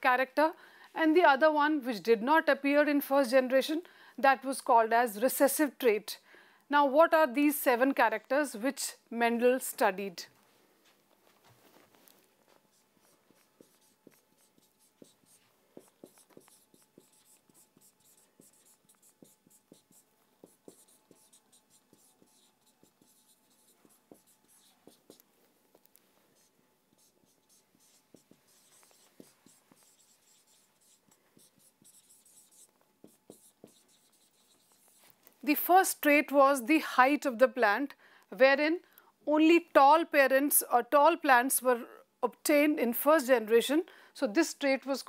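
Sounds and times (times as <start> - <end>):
marker pen writing on whiteboard: 12.5 - 35.2.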